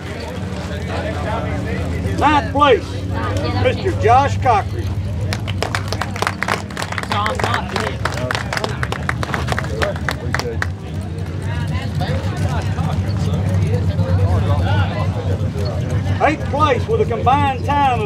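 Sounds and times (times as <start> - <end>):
chatter of several voices: 0.0 - 18.0
small crowd clapping: 5.2 - 11.5.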